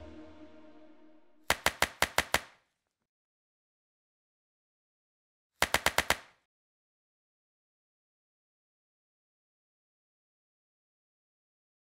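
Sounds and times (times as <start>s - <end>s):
sharp clicks: 1.5s - 2.5s, 5.6s - 6.3s.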